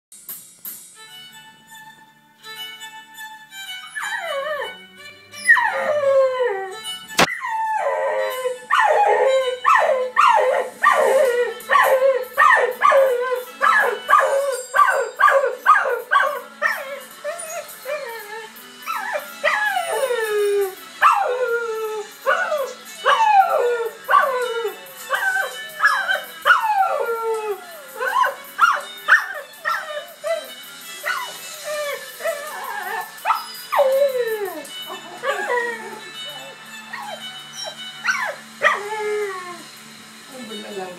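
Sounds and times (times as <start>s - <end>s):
television theme music: 0.2s - 40.9s
dog howling: 4.0s - 4.8s, 5.5s - 39.7s.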